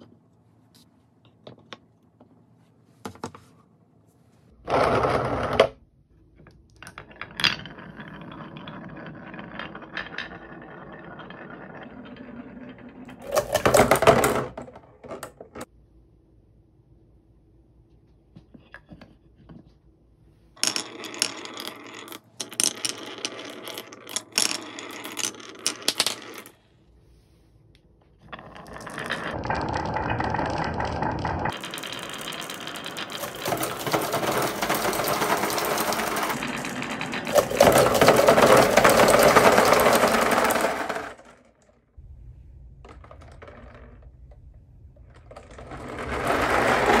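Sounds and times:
glass marbles rattling on wood: 6.7 - 15.5, 20.6 - 26.6, 28.3 - 41.2
low rumble: 42.0 - 46.6.

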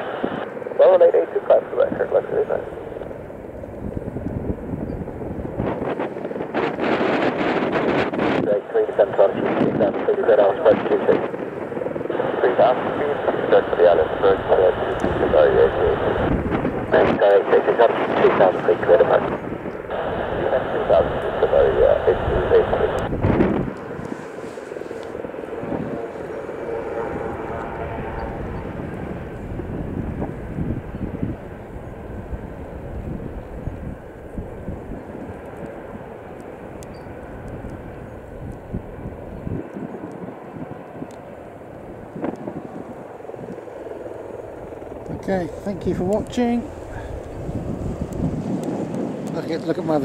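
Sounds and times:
radio voice: 0.0 - 3.0, 8.2 - 11.4, 12.1 - 23.2, 45.1 - 47.2
jet engine rumble: 0.0 - 50.0.

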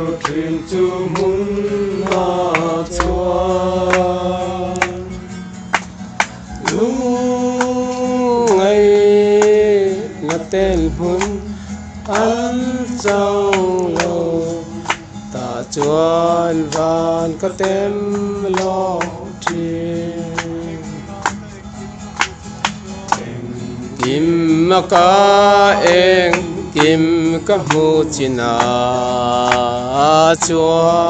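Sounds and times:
men singing together: 0.0 - 5.3, 6.5 - 21.3, 22.9 - 31.0
acoustic guitar strums: 0.0 - 31.0.

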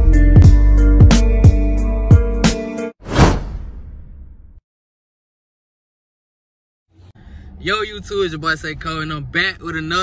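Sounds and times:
loud swish: 3.0 - 4.6.

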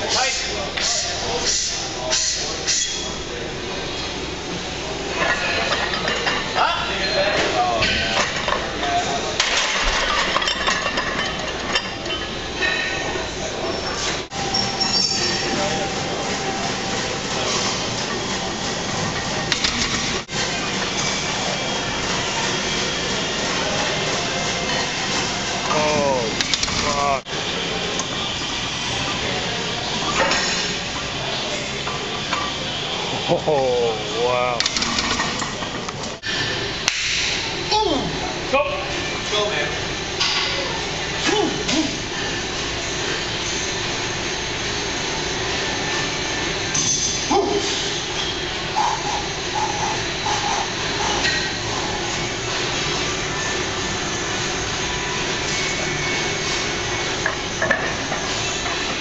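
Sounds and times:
indistinct voices: 47.2 - 57.0.

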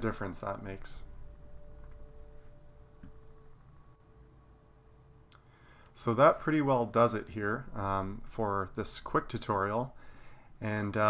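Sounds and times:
thin steady tones: 0.0 - 8.6
low steady hum: 0.0 - 11.0.

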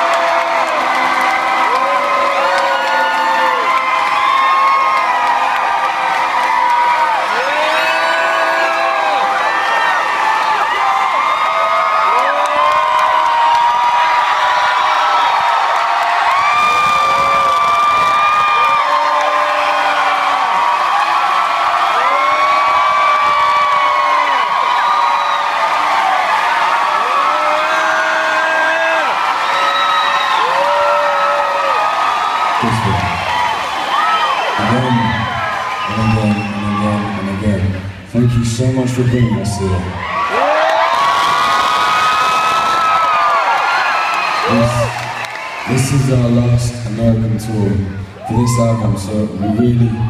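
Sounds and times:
concert crowd cheering and whooping: 0.0 - 50.0.

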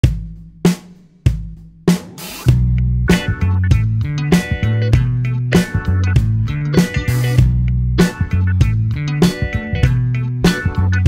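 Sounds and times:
drum hits: 0.0 - 10.9
band with steady drum beat: 0.0 - 11.0.

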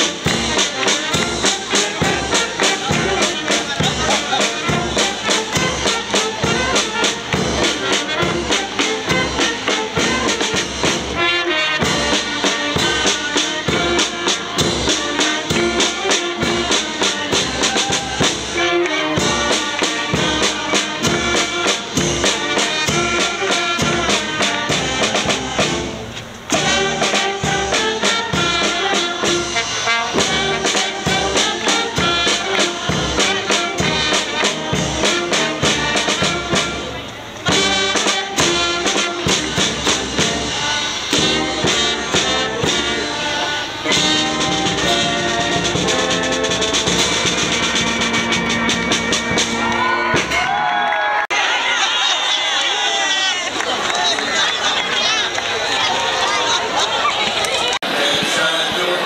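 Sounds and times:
brass band playing dance tune: 0.0 - 59.0.

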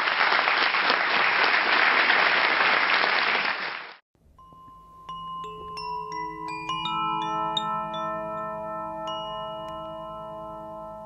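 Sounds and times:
metal chimes ringing: 4.3 - 11.0.

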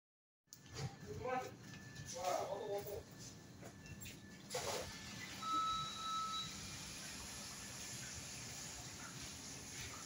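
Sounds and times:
electronic beep: 5.2 - 6.7.

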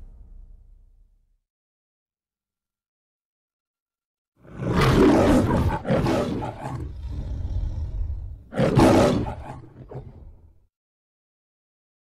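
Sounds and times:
lion roaring: 4.4 - 10.5
low lion growl: 4.4 - 10.6.

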